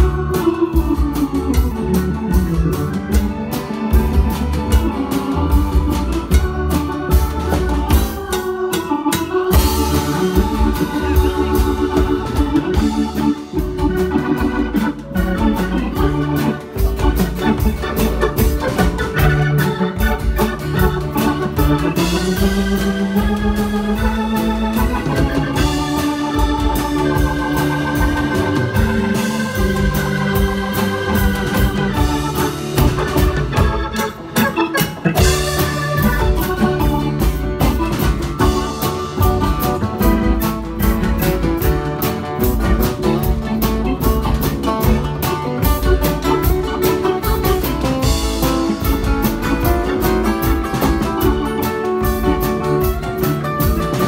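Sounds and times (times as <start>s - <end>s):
organ playing chords: 0.0s - 54.0s
steady beat: 0.0s - 54.0s
strummed acoustic guitar: 0.0s - 54.0s.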